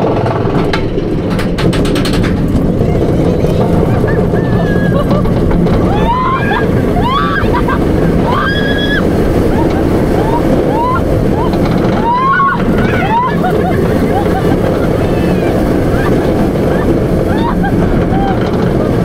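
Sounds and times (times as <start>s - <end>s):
roller coaster train rumbling: 0.0s - 19.0s
wind rushing over microphone: 0.0s - 19.0s
riders yelling and screaming: 2.8s - 19.0s.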